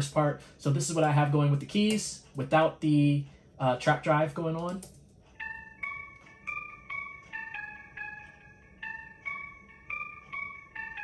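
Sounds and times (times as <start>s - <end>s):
bell-like keys melody: 4.4s - 11.0s.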